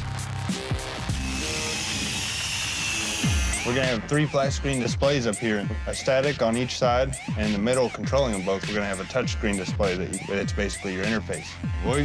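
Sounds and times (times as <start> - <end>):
power tool whining: 0.9 - 4.1.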